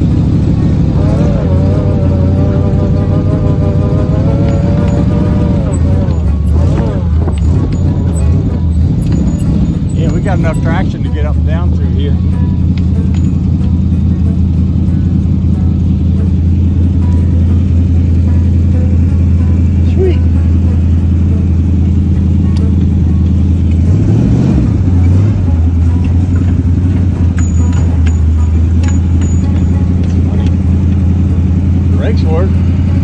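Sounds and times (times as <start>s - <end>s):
car engine running: 0.0s - 33.0s.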